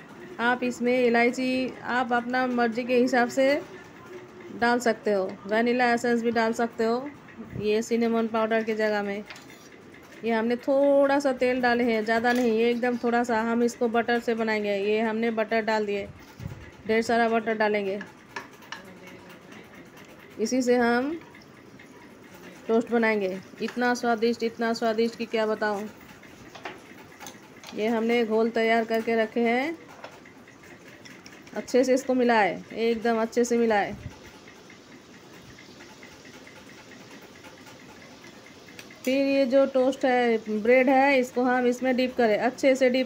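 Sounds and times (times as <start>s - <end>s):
spoon stirring batter in bowl: 15.0s - 43.0s
butter sizzling: 26.4s - 43.0s.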